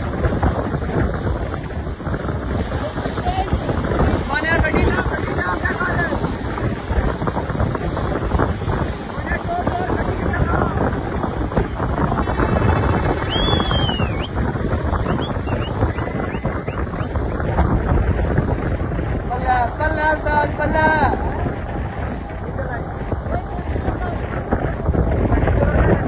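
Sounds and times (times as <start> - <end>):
people's voices: 0.0 - 17.1, 19.0 - 26.0
road and engine rumble: 0.0 - 26.0
wind buffeting microphone: 0.0 - 26.0.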